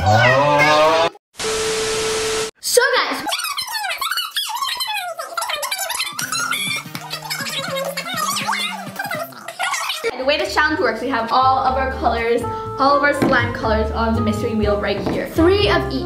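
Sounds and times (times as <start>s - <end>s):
static burst with hum: 1.4s - 2.5s
background music: 5.8s - 16.0s.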